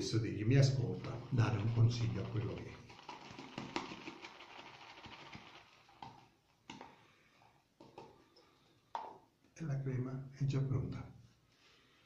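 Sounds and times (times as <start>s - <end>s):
shaving brush whipping lather: 1.0s - 6.2s
brush tapping bowl: 1.0s - 6.9s.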